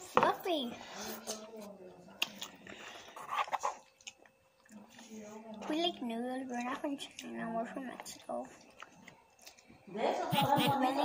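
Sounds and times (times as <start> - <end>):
chewing noodles: 2.2 - 5.6, 6.4 - 9.8.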